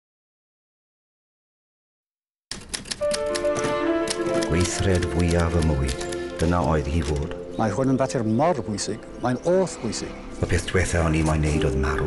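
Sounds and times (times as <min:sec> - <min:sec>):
typewriter keys clicking: 0:02.5 - 0:07.4
held music notes: 0:03.0 - 0:12.0.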